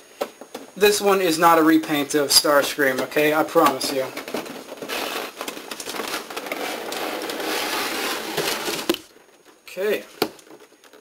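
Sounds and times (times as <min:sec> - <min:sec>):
cardboard box rustling and scraping: 0:04.0 - 0:09.0.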